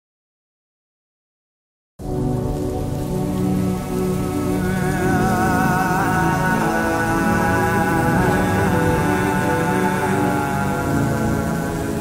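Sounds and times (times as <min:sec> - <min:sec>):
rain falling: 0:02.0 - 0:12.0
soft sustained music: 0:02.0 - 0:12.0.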